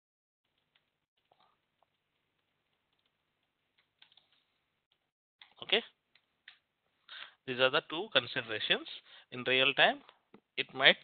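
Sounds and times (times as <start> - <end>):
faint keyboard typing clicks: 0.5 - 6.6.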